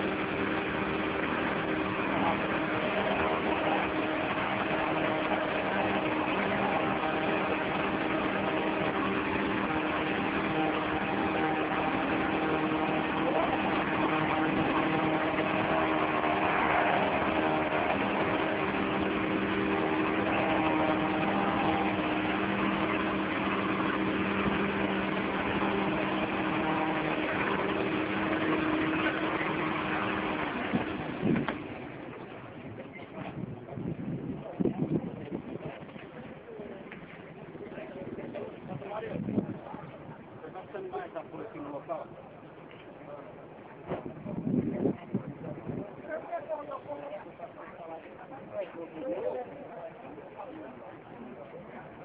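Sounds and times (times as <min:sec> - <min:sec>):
engine humming steadily: 0:00.0 - 0:52.0.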